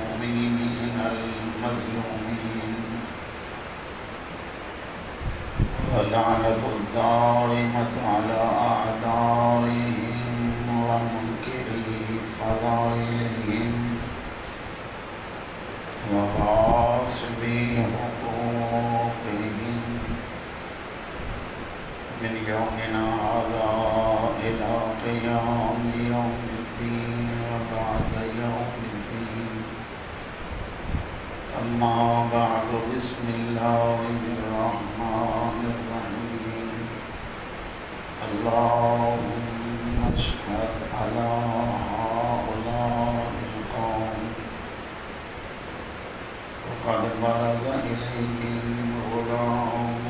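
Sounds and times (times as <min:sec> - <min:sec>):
man chanting through amplification: 0:00.0 - 0:03.4, 0:05.7 - 0:14.5, 0:16.0 - 0:20.4, 0:22.1 - 0:29.9, 0:31.4 - 0:37.2, 0:38.2 - 0:44.8, 0:46.6 - 0:50.0.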